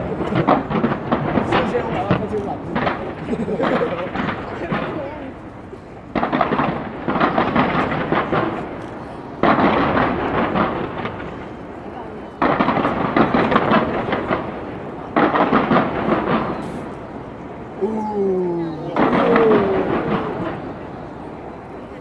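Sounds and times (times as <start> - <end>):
fireworks bang and crackle: 0.0 - 22.0.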